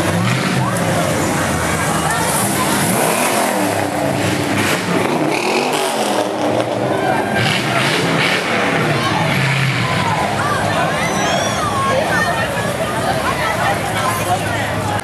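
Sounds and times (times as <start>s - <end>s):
people talking: 0.0s - 5.0s, 5.6s - 15.0s
car engines passing by: 0.0s - 15.0s.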